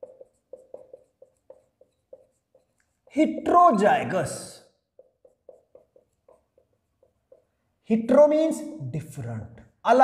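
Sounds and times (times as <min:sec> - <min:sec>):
marker writing on whiteboard: 0:00.0 - 0:08.7.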